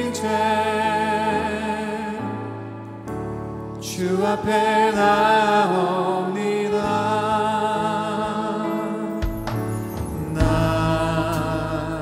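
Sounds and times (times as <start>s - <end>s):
worship music sustained chords: 0.0s - 12.0s.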